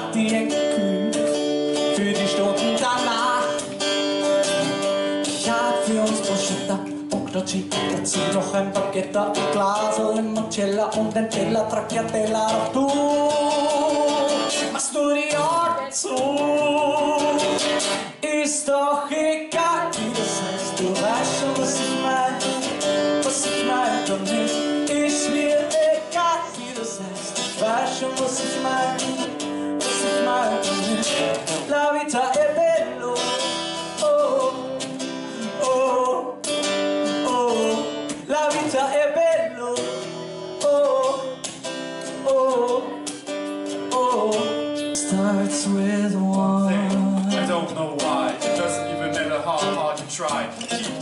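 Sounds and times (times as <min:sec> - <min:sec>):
acoustic guitar strumming: 0:00.0 - 0:51.0
man singing: 0:00.0 - 0:51.0.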